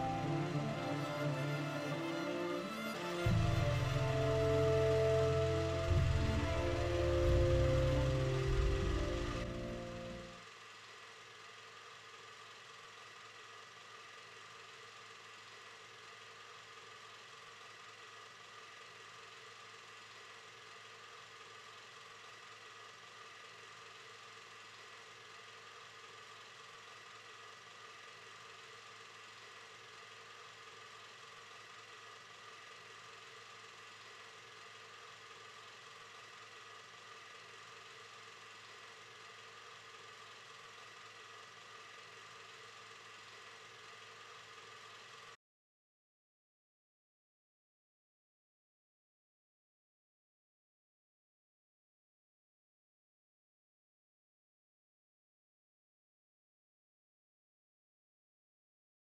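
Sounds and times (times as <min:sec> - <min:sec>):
faint steady hum: 0:00.0 - 0:45.3.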